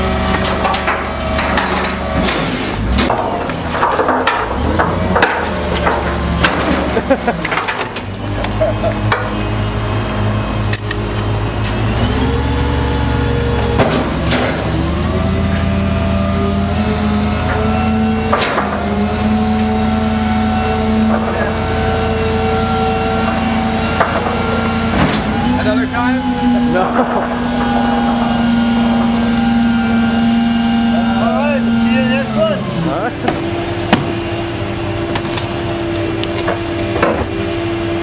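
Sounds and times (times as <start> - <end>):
garbage truck engine running: 0.0 - 38.0
packer hydraulics running: 0.0 - 38.0.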